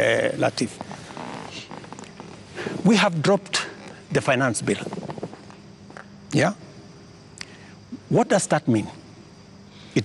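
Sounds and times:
small ticks: 0:00.7 - 0:02.5, 0:04.7 - 0:06.1, 0:07.3 - 0:07.6.

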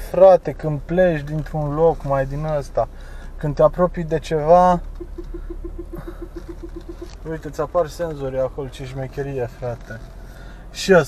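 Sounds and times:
car hum: 0:00.0 - 0:11.0
parking sensor beeping rapidly: 0:04.3 - 0:07.7.

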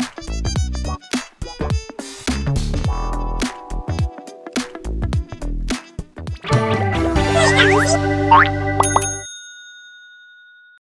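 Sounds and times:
cartoon-style outro jingle: 0:07.2 - 0:09.0
bell-like ding: 0:08.8 - 0:10.8.

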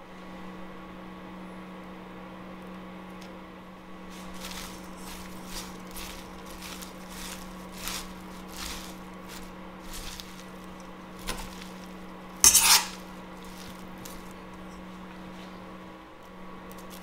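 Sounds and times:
steady low hum: 0:00.0 - 0:17.0
tongs tossing salad in metal bowl: 0:04.1 - 0:14.4.

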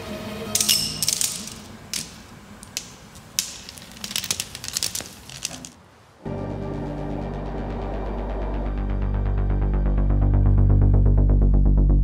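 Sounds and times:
faint music: 0:00.0 - 0:10.4
metallic clicks and rattles: 0:00.6 - 0:05.8.

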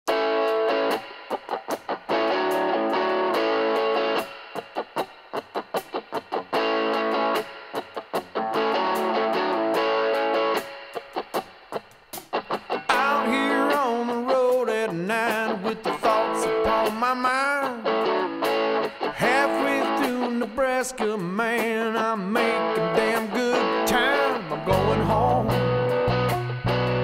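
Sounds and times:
bending guitar melody line: 0:00.1 - 0:27.0
rock guitar chords and muted strums: 0:00.1 - 0:27.0.

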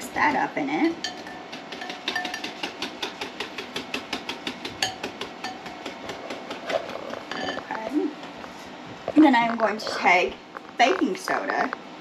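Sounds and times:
whisk clicking against ceramic bowl: 0:01.0 - 0:06.7.

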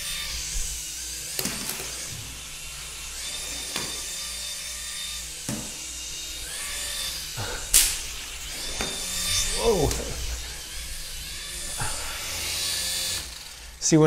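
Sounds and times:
toy propellers whining: 0:00.0 - 0:14.0.

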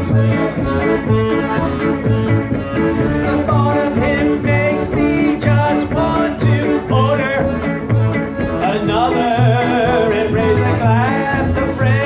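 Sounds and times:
accordion: 0:00.0 - 0:12.0
electric guitar: 0:00.0 - 0:12.0
man singing: 0:03.2 - 0:07.7, 0:08.5 - 0:12.0.

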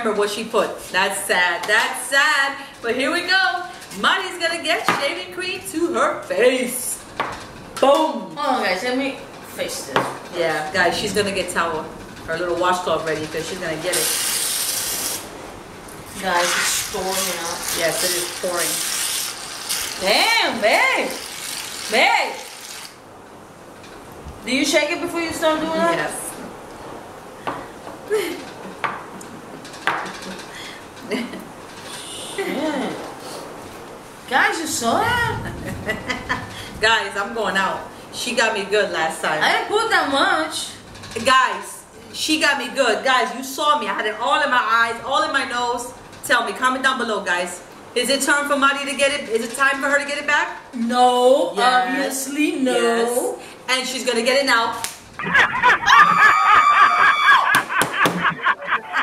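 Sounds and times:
woman laughing: 0:28.1 - 0:29.4, 0:31.0 - 0:31.5, 0:32.3 - 0:33.0, 0:35.2 - 0:36.6, 0:55.2 - 0:59.0.

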